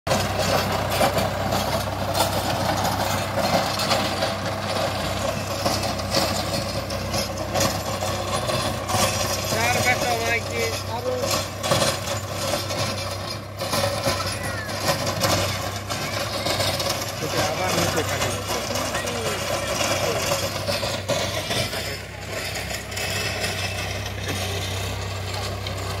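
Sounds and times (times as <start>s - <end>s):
tractor diesel engine running: 0.0s - 26.0s
rotary tiller churning soil: 0.1s - 26.0s.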